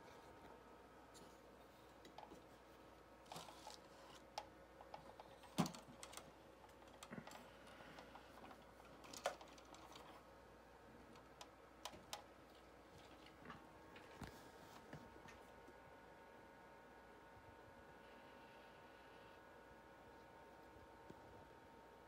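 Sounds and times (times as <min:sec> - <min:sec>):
faint clicks and taps: 0:00.1 - 0:02.7, 0:11.0 - 0:15.8.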